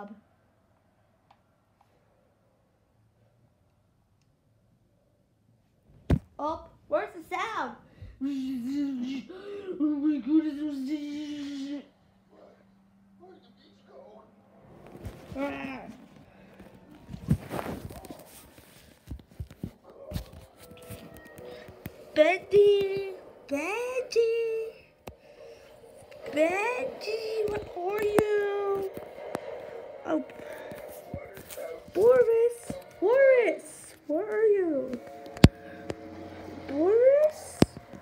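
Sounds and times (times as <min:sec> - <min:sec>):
fabric rustling: 0:14.8 - 0:22.2.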